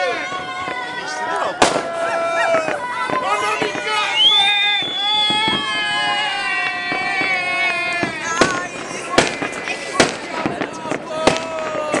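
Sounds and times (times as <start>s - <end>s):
fireworks bangs: 0.0s - 12.0s.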